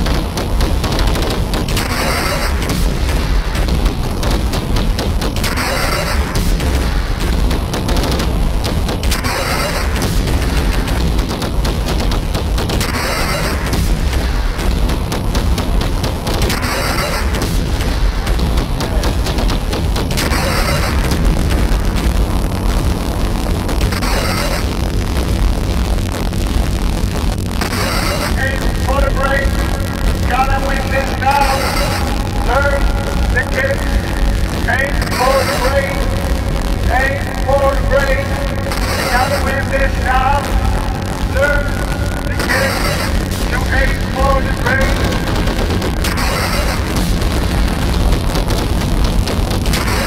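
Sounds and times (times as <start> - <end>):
bass drone: 0.0 - 50.0
noisy electronic hits: 0.0 - 50.0.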